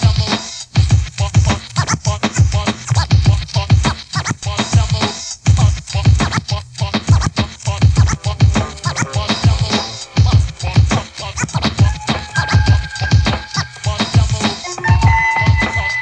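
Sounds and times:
heavy kick drum: 0.0s - 1.6s, 2.2s - 4.0s, 4.7s - 6.3s, 7.0s - 8.8s, 9.4s - 15.8s
hip-hop beat: 0.0s - 16.0s
turntable scratching: 0.0s - 16.0s.

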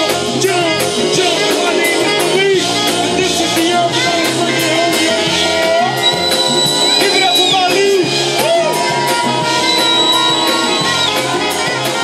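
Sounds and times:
jazz-funk band playing: 0.0s - 12.0s
pulsing bass line: 0.2s - 12.0s
held bending melody notes: 0.9s - 12.0s.

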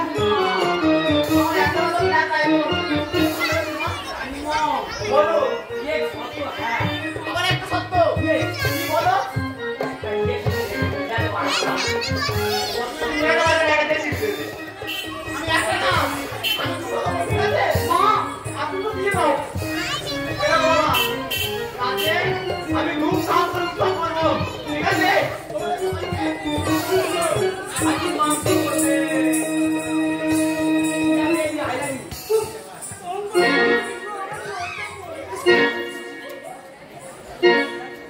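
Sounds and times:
folk music with drum beat: 0.0s - 36.6s
children chattering: 0.0s - 38.0s.

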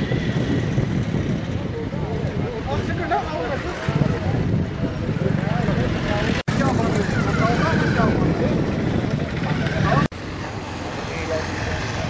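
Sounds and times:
street and vehicle noise: 0.0s - 12.0s
men talking indistinctly: 1.6s - 10.0s.

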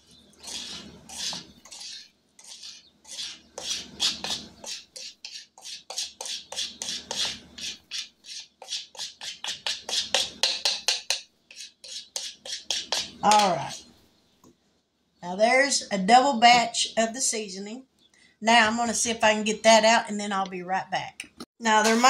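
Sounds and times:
spoon scraping plastic bowl: 0.0s - 13.8s.

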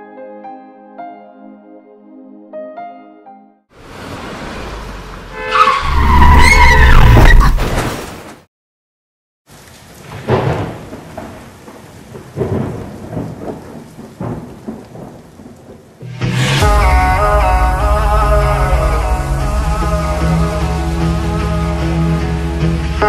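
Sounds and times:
music: 0.0s - 3.7s, 16.0s - 23.0s
rain: 3.8s - 6.1s, 9.5s - 23.0s
heavy low rumble with squealing tone: 4.8s - 7.6s, 16.2s - 23.0s
thunder rumbles: 10.0s - 21.4s.

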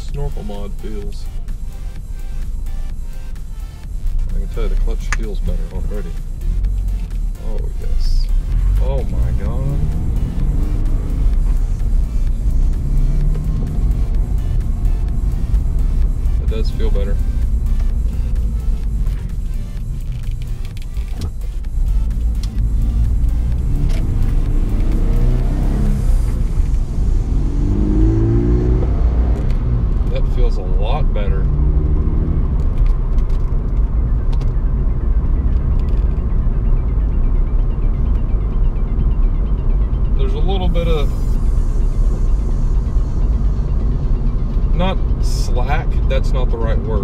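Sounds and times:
car engine accelerating: 0.0s - 47.0s
low road drone: 0.0s - 47.0s.

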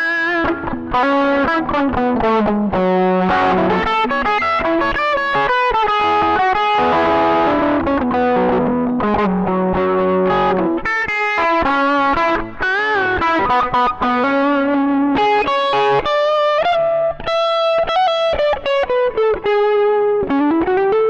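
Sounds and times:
overdriven electric guitar lead: 0.0s - 21.0s.

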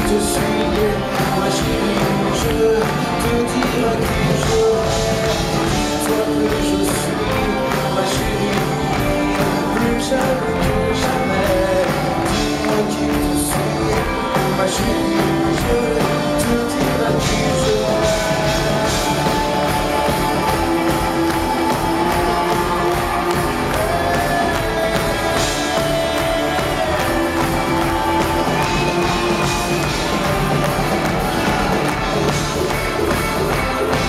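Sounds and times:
live pop-rock band: 0.0s - 34.0s.

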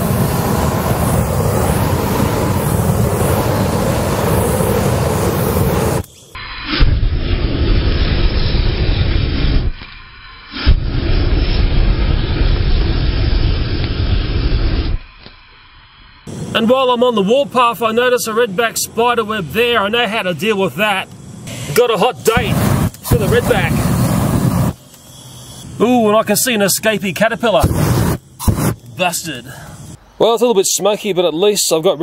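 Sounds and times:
rushing jet of flame: 0.0s - 15.0s, 16.3s - 17.2s, 21.3s - 25.8s, 27.5s - 30.0s.

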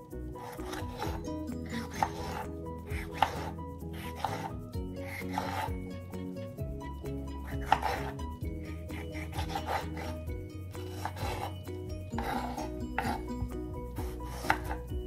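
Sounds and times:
background music: 0.0s - 15.0s
knife slicing tomato: 0.4s - 5.7s, 7.4s - 8.2s, 8.9s - 13.3s, 14.2s - 14.9s.

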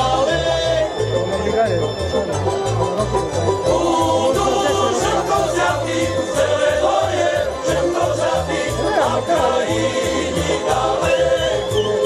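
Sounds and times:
male choir singing folk song: 0.0s - 1.2s, 3.6s - 12.0s
instrumental accompaniment with bass beat: 0.0s - 12.0s.

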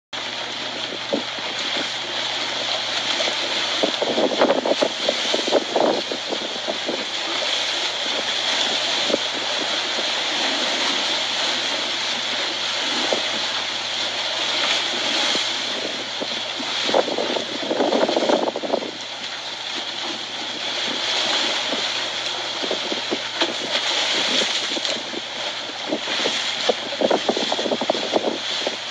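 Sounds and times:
waves sloshing and slapping: 0.2s - 28.9s
wind: 0.2s - 28.9s.

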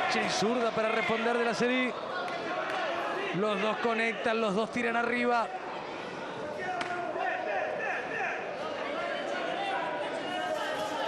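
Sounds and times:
arena crowd chatter: 0.0s - 11.0s.

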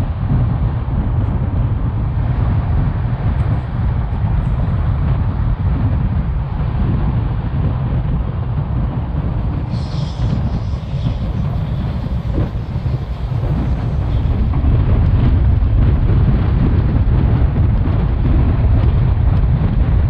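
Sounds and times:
rushing air: 0.0s - 20.0s
train wheels rumbling on track: 0.0s - 20.0s
brief high hiss: 9.6s - 14.5s.

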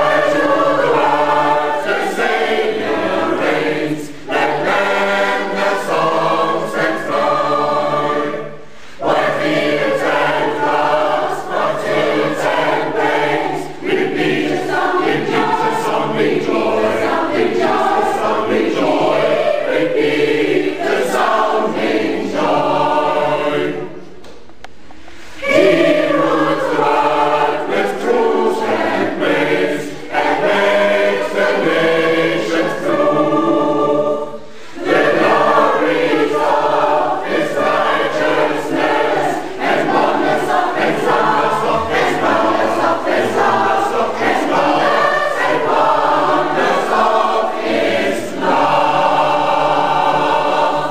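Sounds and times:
school choir singing: 0.0s - 24.4s, 25.0s - 50.9s.

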